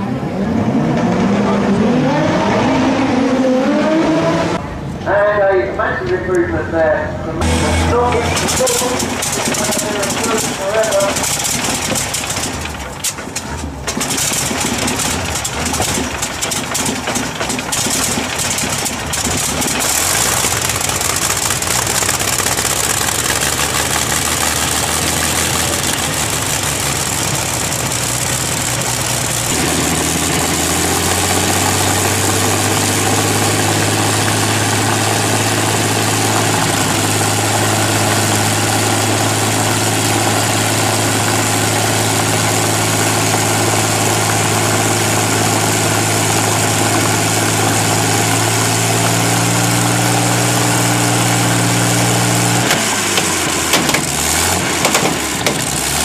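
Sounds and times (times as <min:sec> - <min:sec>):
aero engine idling unevenly: 0:04.6 - 0:56.0.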